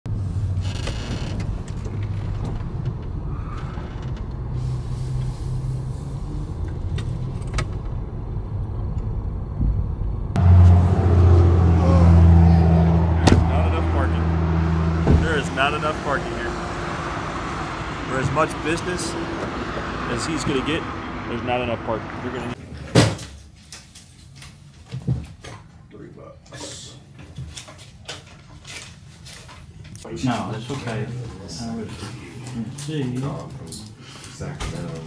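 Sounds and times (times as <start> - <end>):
car engine and road rumble: 0.1 - 22.6
low engine hum: 0.1 - 22.6.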